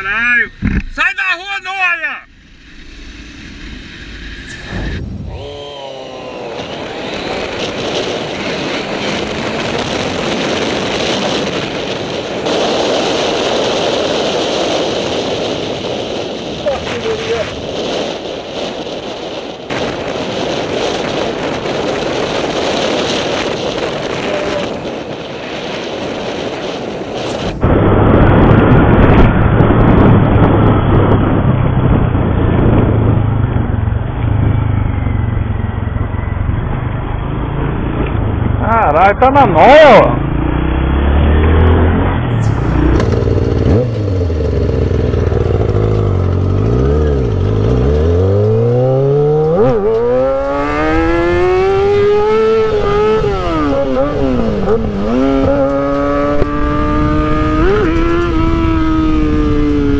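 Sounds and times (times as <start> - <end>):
wind rushing over microphone: 2.2 - 59.9
motorcycle engine running: 28.8 - 39.0, 40.0 - 59.9
muffled low engine hum: 40.1 - 59.9.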